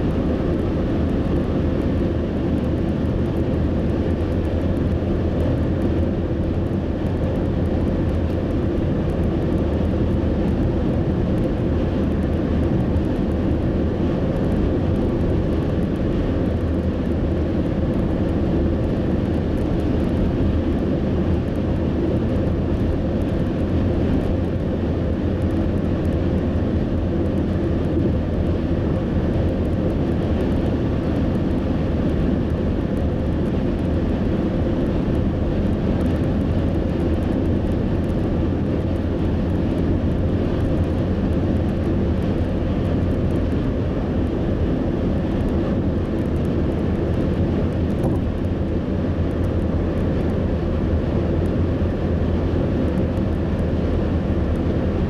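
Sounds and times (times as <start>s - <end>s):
car cabin road and engine noise: 0.0s - 55.0s.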